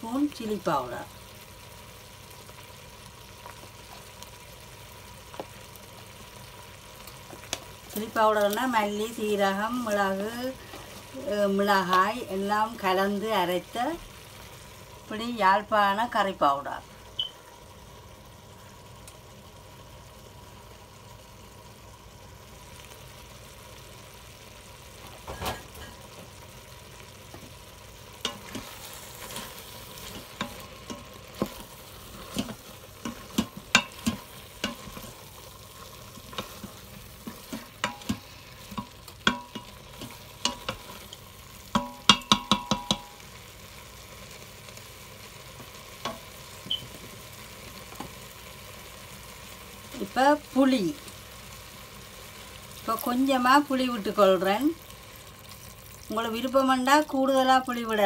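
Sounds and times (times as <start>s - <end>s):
low sizzle of frying: 0.0s - 58.0s
wooden spatula scraping pot: 28.2s - 41.2s.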